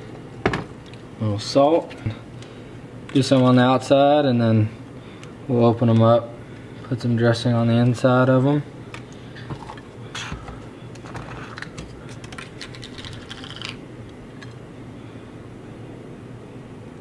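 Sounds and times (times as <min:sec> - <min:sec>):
steady low hum: 0:00.0 - 0:17.0
hands clicking and scratching: 0:11.5 - 0:13.8.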